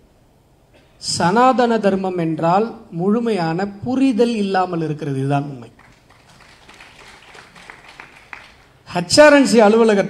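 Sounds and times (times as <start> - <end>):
faint scattered applause: 5.7 - 8.9.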